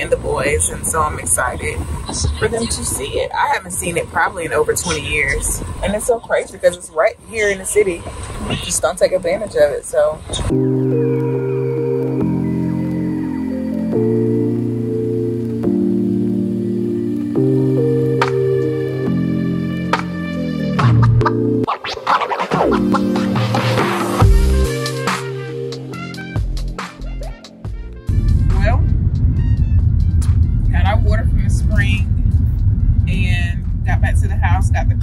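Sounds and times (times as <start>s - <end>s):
road and engine rumble in car: 0.0s - 10.5s, 28.1s - 35.0s
slow held keyboard chords: 10.5s - 21.7s.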